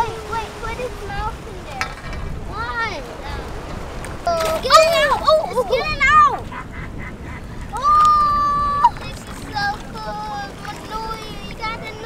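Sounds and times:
child's excited high voice: 4.2s - 6.5s, 7.7s - 12.0s.

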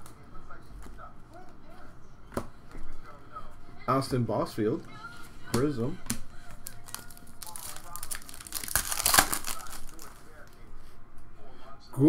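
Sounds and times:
card handling noise: 5.6s - 10.7s.

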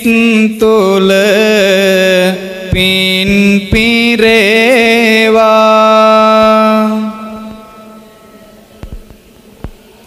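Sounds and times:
monk chanting through microphone: 0.0s - 9.1s.

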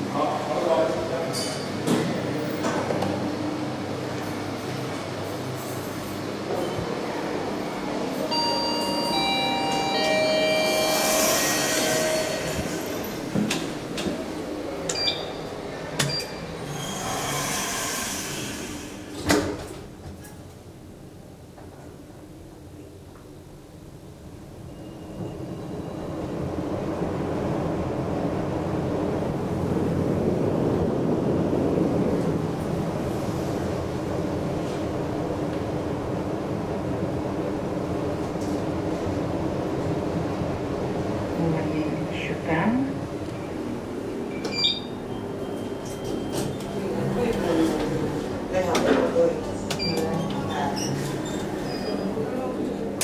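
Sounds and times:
elevator ride rushing hum: 0.0s - 53.0s
elevator machine whine: 3.4s - 19.1s, 43.1s - 48.6s
elevator doors sliding open: 4.0s - 20.5s, 43.3s - 53.0s.

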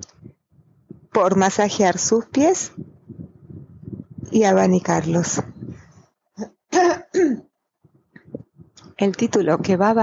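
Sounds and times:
person clearing throat: 6.7s - 7.5s.

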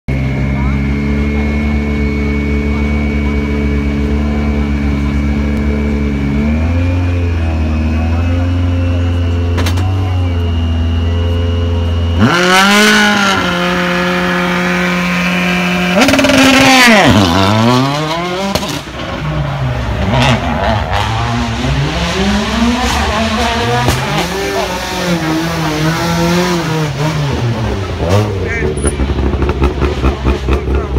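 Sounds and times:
car engine idling: 0.1s - 16.6s
spectators' voices: 0.2s - 13.8s, 17.9s - 30.9s.

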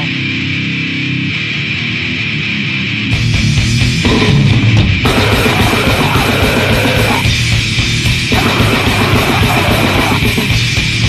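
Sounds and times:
distorted electric guitar riff: 0.0s - 11.0s.

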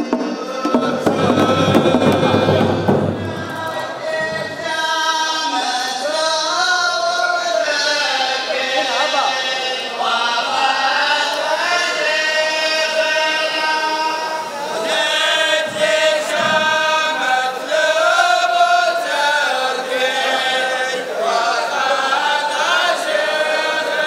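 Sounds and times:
men chanting in unison: 0.0s - 24.0s.

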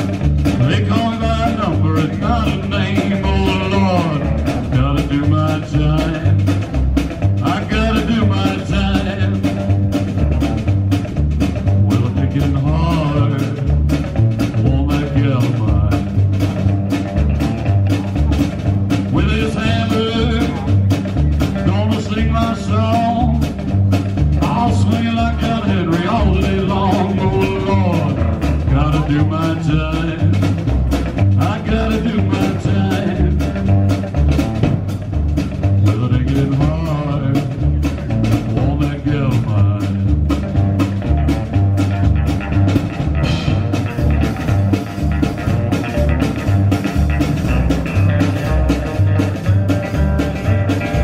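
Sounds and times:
drum kit hits: 0.0s - 51.0s
electric guitar: 0.0s - 51.0s
upright bass: 0.0s - 51.0s.

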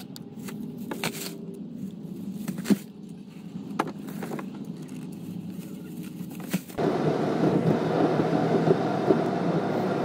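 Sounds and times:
car interior driving noise: 3.6s - 10.0s.

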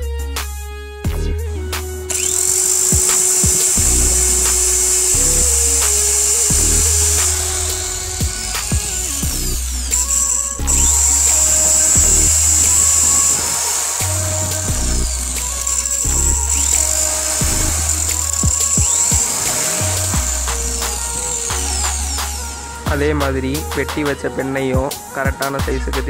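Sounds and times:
background music with beat: 0.0s - 26.0s
drill cutting disc whine: 2.1s - 25.1s.

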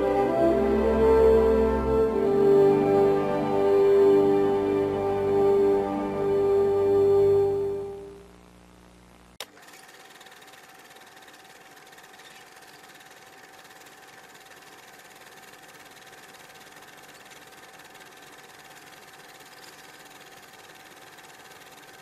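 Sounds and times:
faint steady hiss: 0.0s - 9.4s
thin constant whine: 0.0s - 22.0s.

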